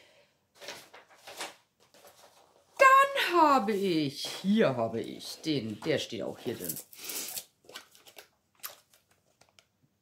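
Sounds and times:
plastic wrapper rustling: 6.5s - 9.7s.

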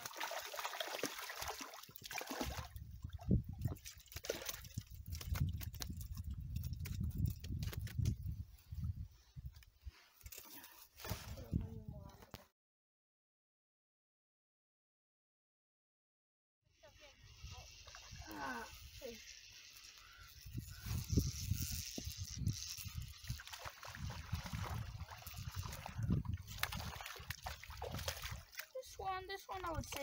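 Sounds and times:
fish splashing in water: 0.0s - 5.7s, 23.2s - 28.8s
water sloshing: 0.0s - 6.3s, 23.2s - 30.0s
wind rumble on microphone: 2.6s - 3.8s, 4.6s - 9.6s, 11.1s - 12.3s, 20.4s - 28.4s.

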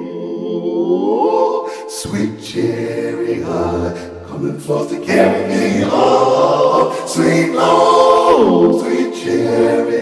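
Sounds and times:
synthesized choir chords: 0.0s - 10.0s.

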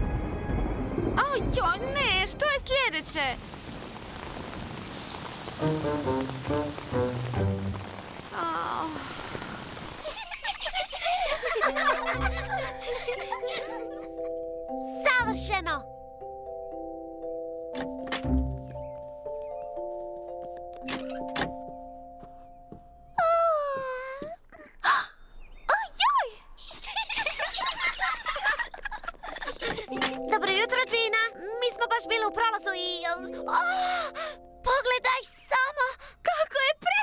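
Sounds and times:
rain falling: 0.0s - 14.0s
soft cartoon music notes: 5.6s - 7.8s, 11.8s - 22.7s, 29.9s - 35.4s
cartoon girl's wordless vocal sound: 30.4s - 37.0s.

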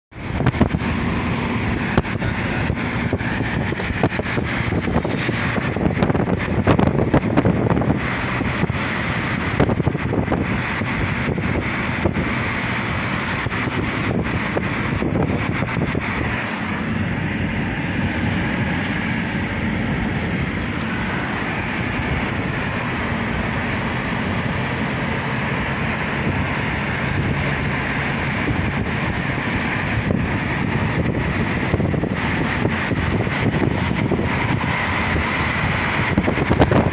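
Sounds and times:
car road and wind noise: 0.0s - 36.9s.

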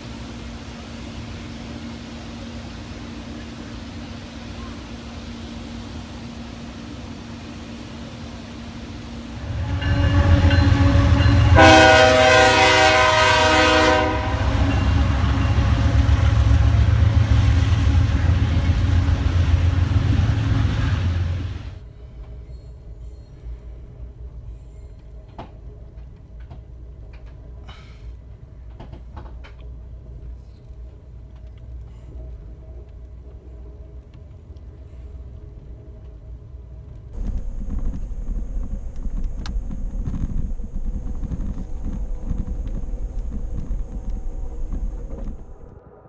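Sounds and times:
train rumble: 0.0s - 46.0s
train horn blowing: 9.3s - 17.6s
steady low hum: 29.6s - 46.0s.

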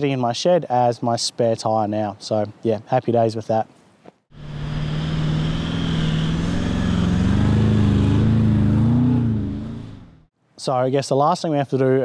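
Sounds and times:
vehicle engine under load: 4.3s - 10.3s
rushing noise: 4.4s - 10.2s.

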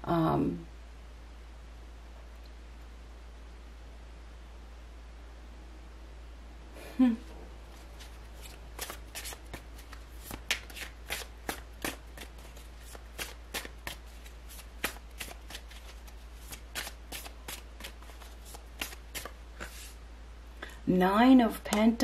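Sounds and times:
cards being shuffled: 7.7s - 20.0s.

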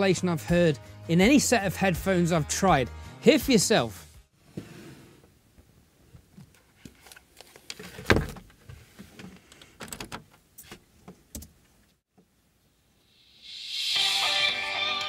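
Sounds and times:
hands handling headphones: 5.6s - 11.3s.

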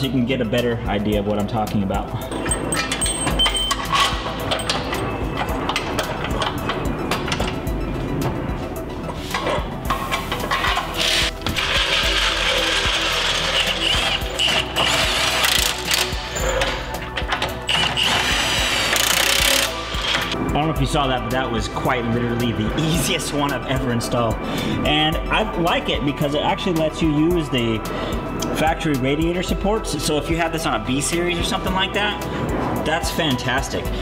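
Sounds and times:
background music: 0.0s - 34.0s
cordless impact wrench bursts: 11.0s - 16.3s, 17.7s - 20.3s.

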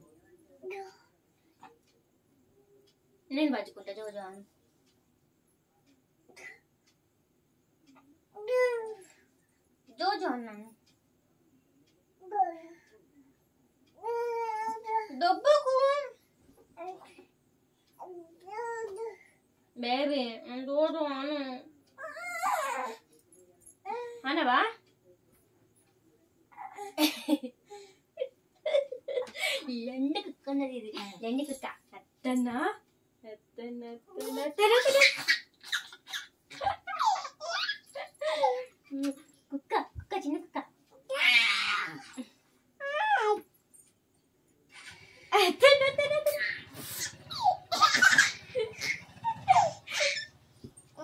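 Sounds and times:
toddler laughing: 34.2s - 38.7s, 44.8s - 50.3s.

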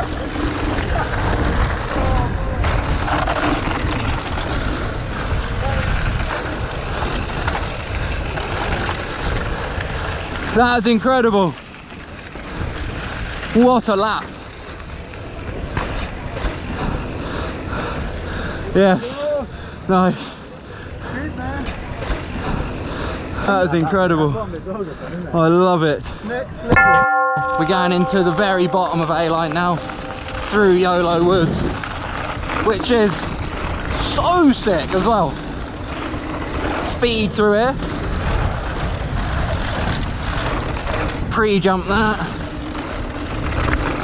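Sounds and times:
bike tyres rolling over gravel: 0.0s - 26.6s, 27.7s - 44.0s
steady low rumble: 26.7s - 34.0s.

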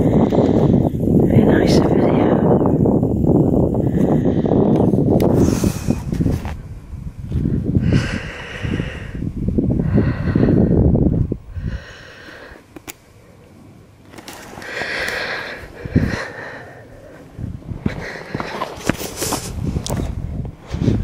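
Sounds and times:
wind buffeting microphone: 0.0s - 12.6s, 14.5s - 21.0s
person breathing hard: 3.7s - 6.3s, 7.4s - 12.7s, 14.5s - 19.7s.

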